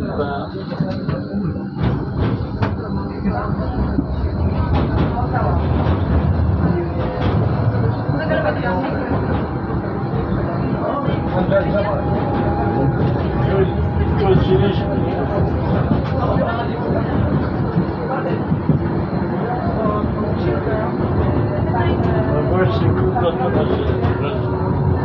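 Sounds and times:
tram wheels rumbling: 0.0s - 25.0s.

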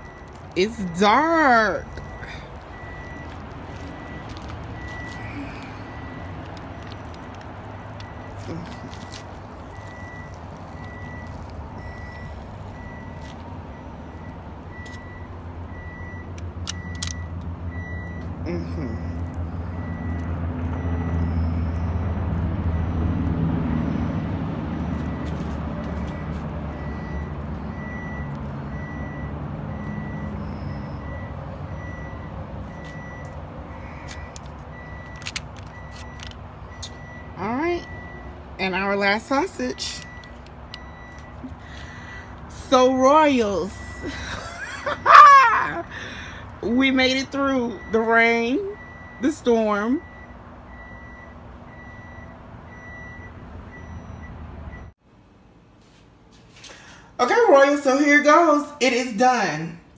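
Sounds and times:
large vehicle engine rumbling: 0.0s - 57.4s.

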